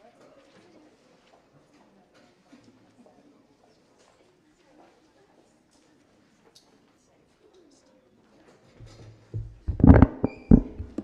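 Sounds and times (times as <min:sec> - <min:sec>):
microphone bumps and knocks: 0:08.8 - 0:11.0.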